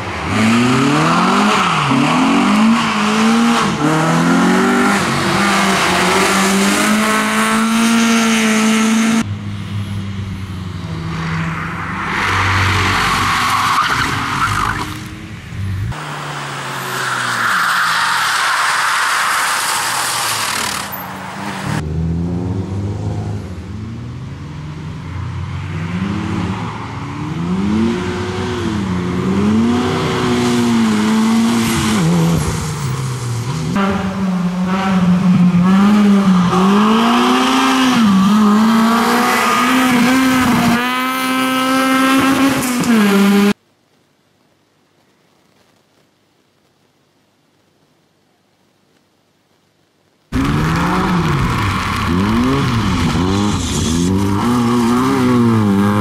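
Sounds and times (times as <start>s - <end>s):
rally car engines revving: 0.0s - 9.4s, 10.8s - 43.6s, 50.3s - 56.0s.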